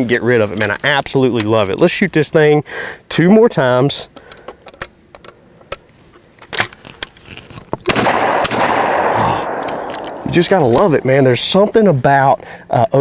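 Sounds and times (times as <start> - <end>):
shells loading into shotgun clicks: 4.1 - 11.0
shotgun firing with echo: 7.9 - 10.3.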